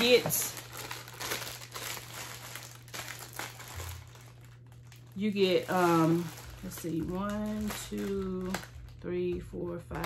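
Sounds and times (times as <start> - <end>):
plastic wrapping crinkling: 0.0 - 9.1.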